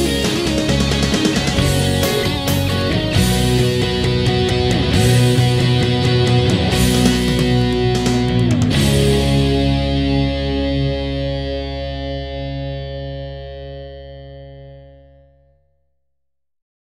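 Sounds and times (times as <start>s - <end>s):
band accented hits: 0.0s - 11.6s
distorted electric guitar chord ringing: 0.0s - 15.6s.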